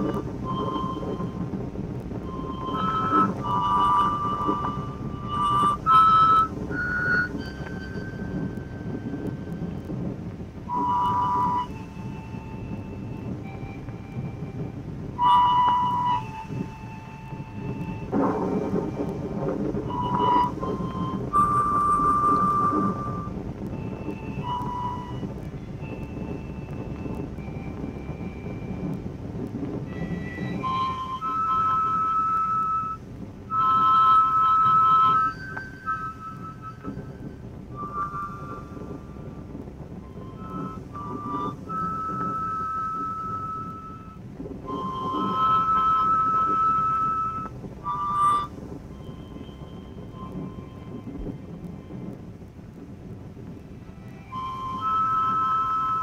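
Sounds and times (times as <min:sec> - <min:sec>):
low soundtrack rumble: 0:00.0 - 0:56.0
harmonica playing slow tune: 0:02.2 - 0:10.0, 0:10.7 - 0:29.0.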